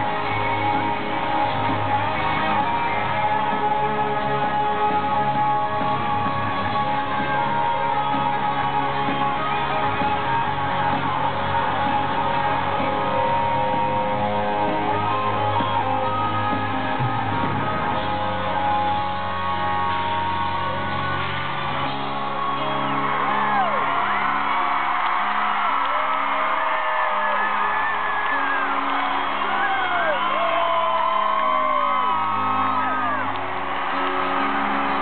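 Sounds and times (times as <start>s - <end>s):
live rock band playing: 0.0s - 25.0s, 28.1s - 35.0s
fans whooping and shouting: 0.0s - 35.0s.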